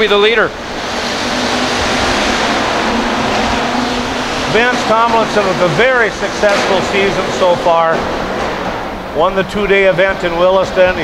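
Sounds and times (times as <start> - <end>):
race car engines roaring: 0.0 - 11.0.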